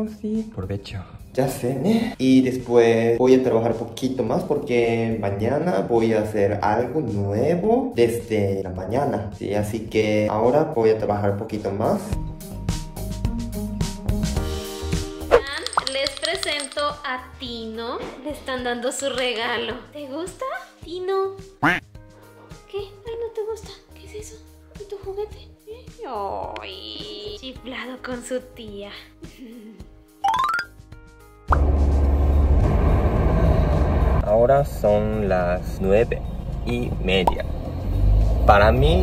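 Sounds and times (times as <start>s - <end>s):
background music with sustained tones: 0.0s - 15.4s, 16.5s - 37.0s
rising electronic tones: 30.2s - 30.7s.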